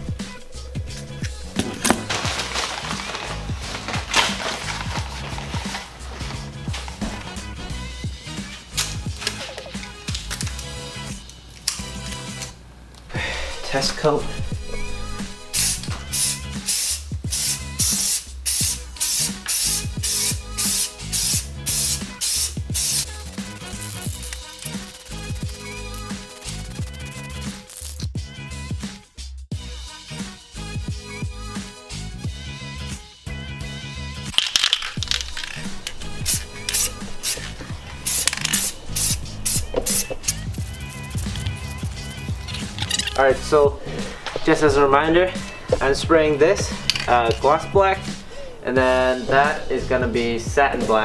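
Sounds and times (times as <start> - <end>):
background music: 0.0 - 51.0
music with drum beat: 15.2 - 31.8, 35.8 - 43.9
spray paint can hissing: 15.5 - 28.1, 34.4 - 43.0.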